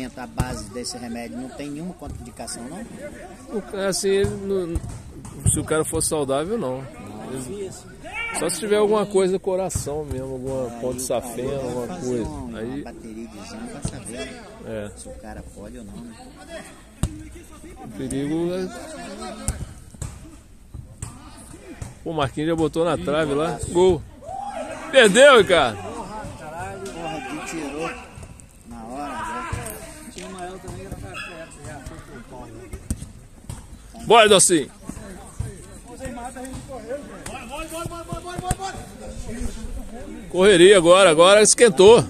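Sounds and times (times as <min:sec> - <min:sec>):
faint shouts of players: 0:06.7 - 0:09.0, 0:23.4 - 0:32.8
football being kicked: 0:34.9 - 0:38.9.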